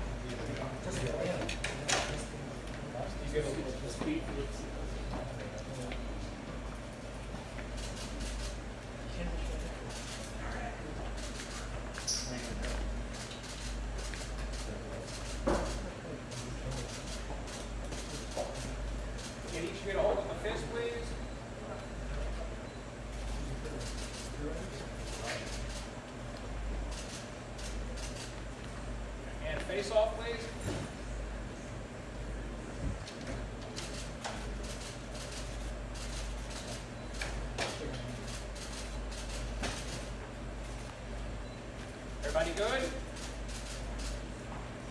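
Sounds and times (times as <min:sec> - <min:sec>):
room murmur: 0:00.0 - 0:44.9
man speaking: 0:42.2 - 0:43.0.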